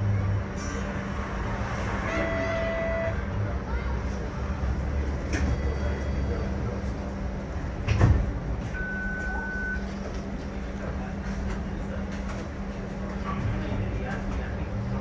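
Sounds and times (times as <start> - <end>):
streetcar interior hum: 0.0 - 15.0
high beep: 8.8 - 9.8.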